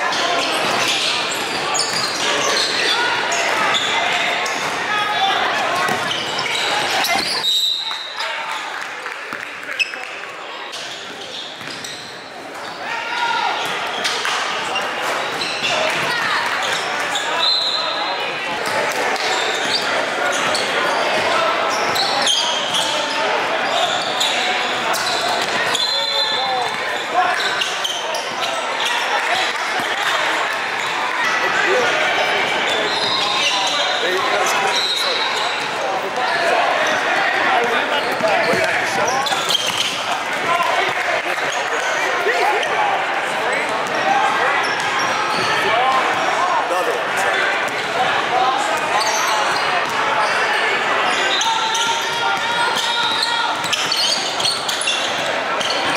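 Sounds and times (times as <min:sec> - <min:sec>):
hubbub of echoing voices: 0:00.0 - 0:55.9.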